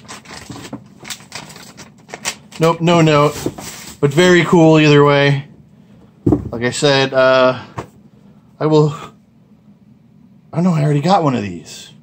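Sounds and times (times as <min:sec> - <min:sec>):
paper rustling and crinkling: 0:00.0 - 0:04.4.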